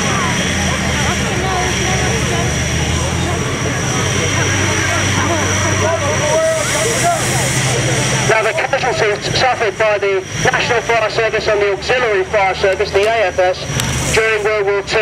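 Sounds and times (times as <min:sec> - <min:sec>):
many people talking: 0:00.0 - 0:15.0
pump engine running: 0:00.0 - 0:15.0
hiss: 0:06.4 - 0:07.8.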